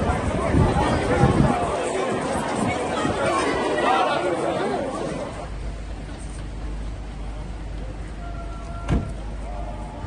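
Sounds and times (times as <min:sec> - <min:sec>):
overlapping chatter: 0:00.0 - 0:10.0.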